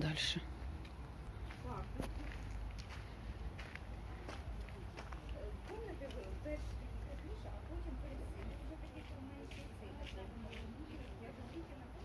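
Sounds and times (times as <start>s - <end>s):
low outdoor rumble: 0.0s - 12.0s
footsteps on pavement: 0.7s - 12.0s
distant people talking: 1.3s - 12.0s.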